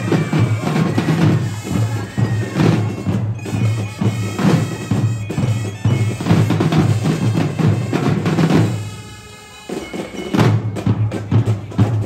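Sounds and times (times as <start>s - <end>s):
bass and snare drums beating: 0.0s - 12.0s
sustained bugle notes: 0.4s - 10.4s.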